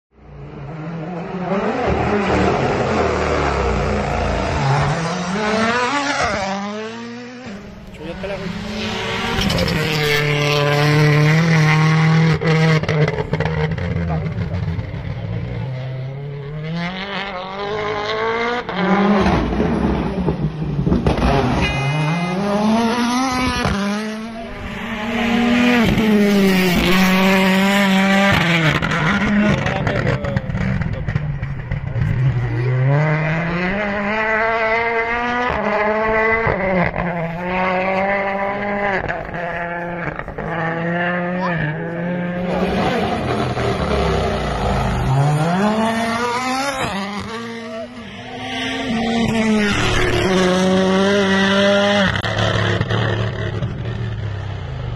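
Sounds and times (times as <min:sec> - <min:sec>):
rally car engines revving: 0:00.2 - 0:54.9.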